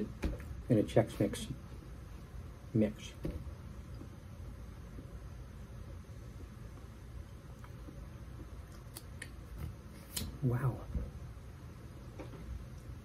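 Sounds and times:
low room noise: 0.0 - 13.0.

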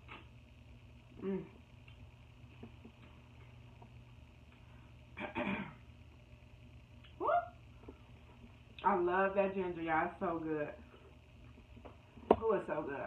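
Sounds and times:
person humming mm: 1.2 - 1.6.

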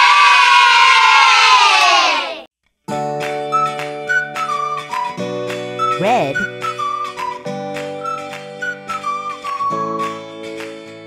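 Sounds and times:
children cheering and shouting: 0.0 - 2.5.

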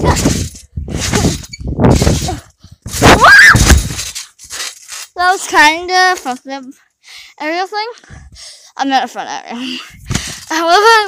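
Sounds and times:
trampoline thuds and rustling: 0.0 - 6.5.

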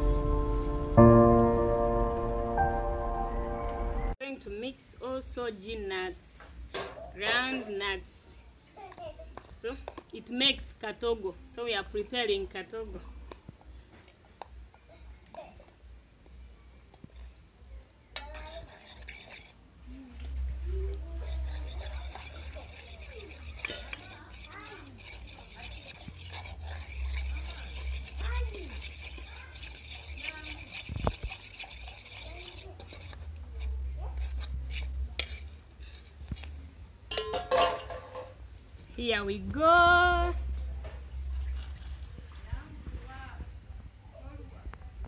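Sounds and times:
spoon scraping metal saucepan: 18.2 - 19.6, 21.1 - 36.5.

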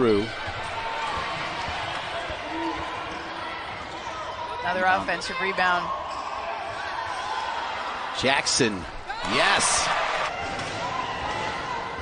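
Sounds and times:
arena crowd noise: 0.0 - 12.0
faint basketball court sounds: 0.0 - 12.0.

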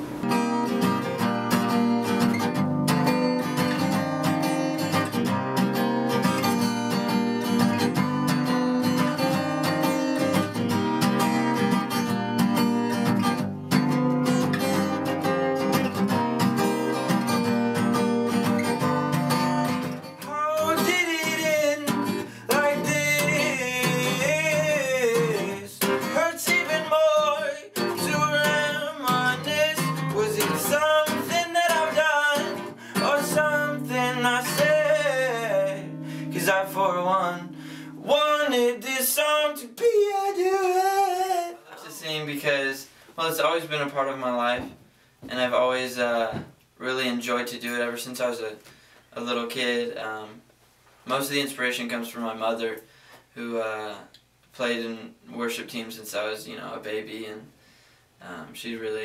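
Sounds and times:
acoustic guitar strumming: 0.0 - 42.6
man singing: 20.2 - 42.2.

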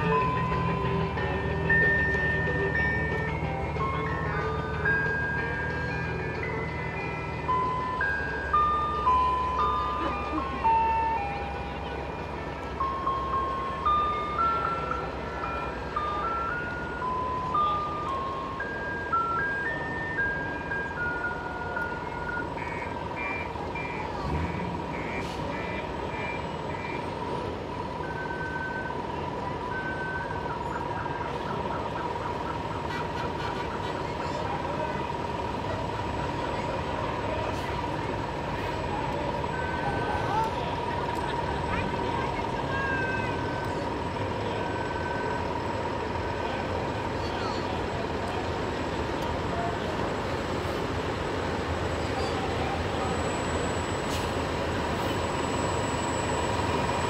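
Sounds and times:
steady high tone: 0.0 - 27.2
diesel engine: 0.0 - 57.0
trucks driving slowly past: 0.0 - 57.0
voices: 0.0 - 57.0
short electronic beeps: 21.9 - 27.1.

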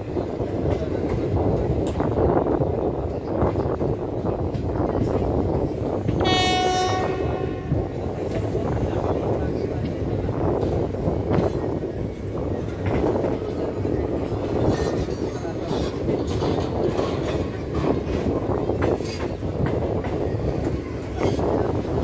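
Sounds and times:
train wheels rumbling on rail: 0.0 - 22.0.

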